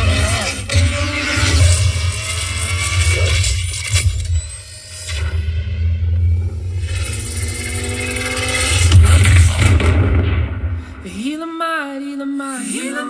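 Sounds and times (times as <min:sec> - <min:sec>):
car engine: 0:00.0 - 0:04.3, 0:05.6 - 0:11.0.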